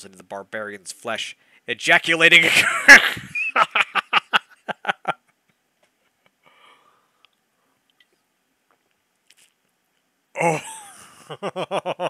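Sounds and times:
faint breath: 1.4s - 1.7s, 6.4s - 7.9s.

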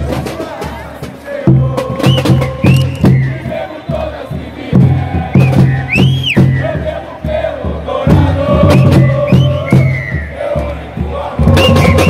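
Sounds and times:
bass drums: 0.0s - 12.0s
football supporters chanting: 0.0s - 12.0s.

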